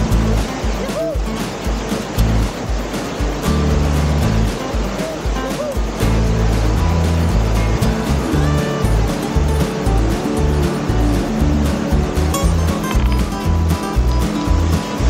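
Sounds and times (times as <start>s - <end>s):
background music with bass line: 0.0s - 15.0s
whitewater rapids rushing: 0.0s - 15.0s.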